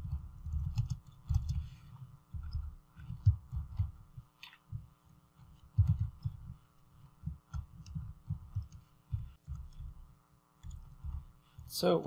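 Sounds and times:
keyboard keystrokes thudding: 0:00.0 - 0:01.7, 0:02.3 - 0:04.9, 0:05.5 - 0:06.6, 0:07.2 - 0:11.3
steady electrical hum: 0:00.0 - 0:12.0.

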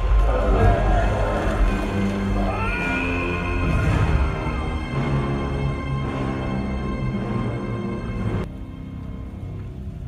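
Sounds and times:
dramatic orchestral music: 0:00.0 - 0:10.0.

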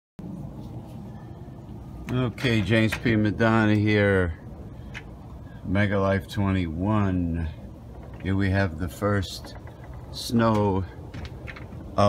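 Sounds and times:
low outdoor background rumble: 0:00.2 - 0:12.0.

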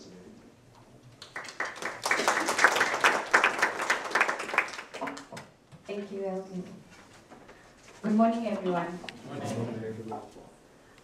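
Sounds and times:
audience applauding: 0:01.2 - 0:05.4.

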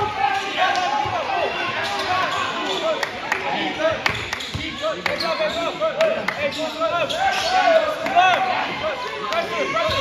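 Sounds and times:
sneakers squeaking: 0:00.0 - 0:02.9, 0:04.1 - 0:08.8
crowd voices: 0:00.0 - 0:10.0.

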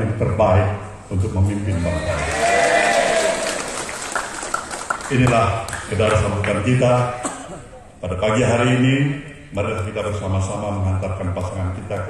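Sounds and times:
crowd applauding: 0:02.0 - 0:06.6.

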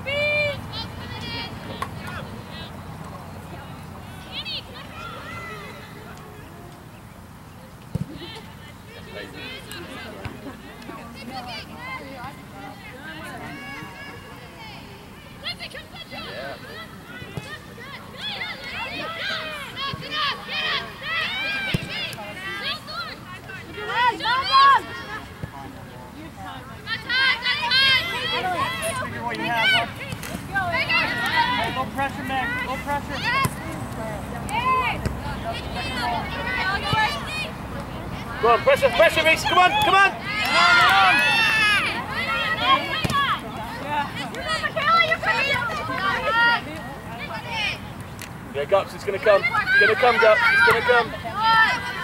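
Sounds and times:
distant players shouting: 0:00.0 - 0:06.8, 0:08.0 - 0:25.8, 0:26.5 - 0:47.9, 0:48.6 - 0:52.0
open-air noise: 0:00.0 - 0:52.0
soccer ball kick: 0:42.9 - 0:43.4.

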